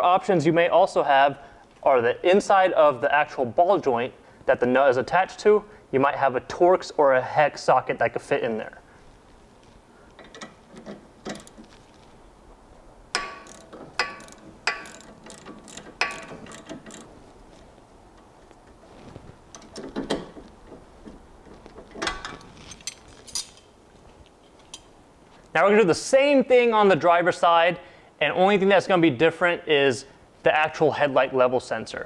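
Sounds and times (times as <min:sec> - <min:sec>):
ratchet clicks: 0:13.1 - 0:17.1
wrench clinking on metal: 0:13.2 - 0:17.1, 0:22.0 - 0:23.7.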